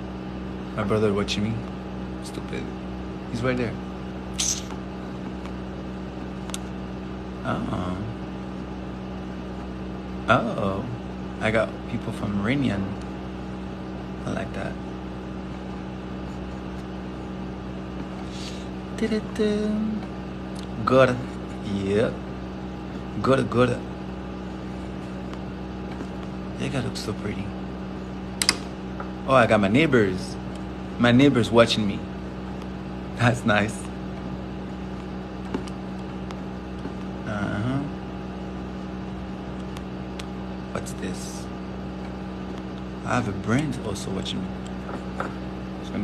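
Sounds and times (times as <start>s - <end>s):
low mechanical hum: 0.0s - 46.0s.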